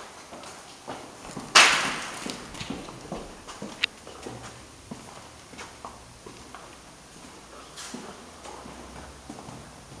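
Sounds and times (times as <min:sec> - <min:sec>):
footsteps on hard floor: 0:00.9 - 0:10.0.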